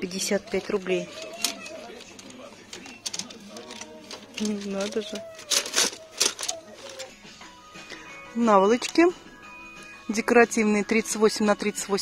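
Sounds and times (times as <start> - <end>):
faint background voices: 0.0 - 7.4.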